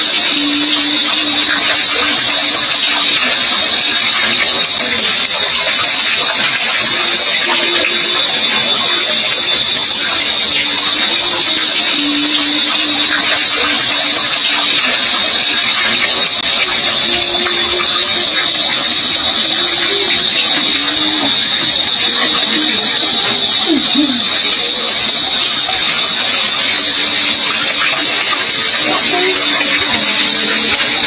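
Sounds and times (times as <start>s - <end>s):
water pouring and splashing: 0.0s - 31.0s.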